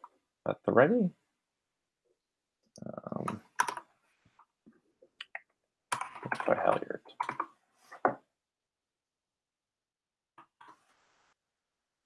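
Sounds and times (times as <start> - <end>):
computer keyboard keystrokes: 3.6 - 3.8.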